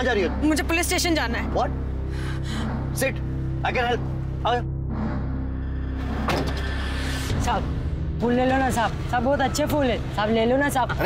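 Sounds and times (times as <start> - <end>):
low background music drone: 0.0 - 11.0.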